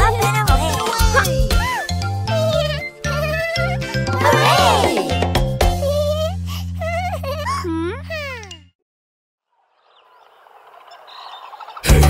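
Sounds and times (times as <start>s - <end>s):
bird calls: 9.5s - 12.0s
jungle ambience: 9.5s - 12.0s.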